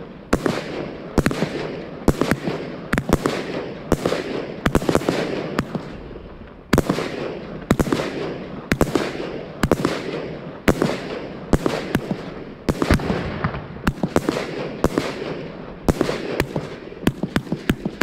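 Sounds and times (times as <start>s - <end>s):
firework bangs: 6.7s - 18.0s.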